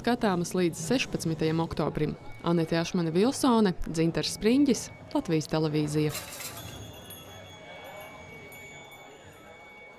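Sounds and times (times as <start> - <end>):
metal pendants ringing: 5.2 - 9.9.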